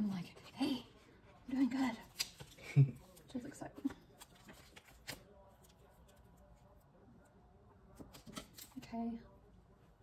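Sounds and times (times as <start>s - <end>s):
paper rustling: 3.9s - 6.2s.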